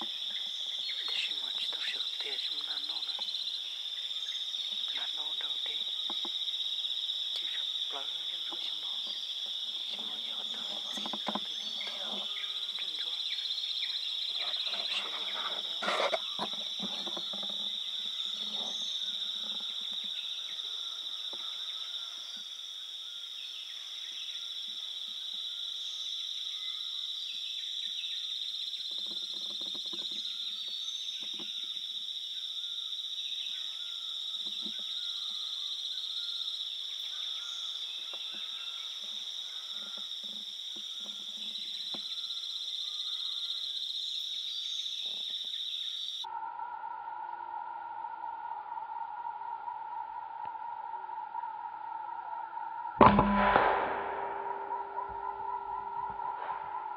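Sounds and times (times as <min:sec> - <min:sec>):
faint scattered calls: 0:00.0 - 0:23.0, 0:54.1 - 0:56.9
shrill chorus of forest insects: 0:00.0 - 0:56.9
steady electronic tone: 0:53.0 - 0:56.9.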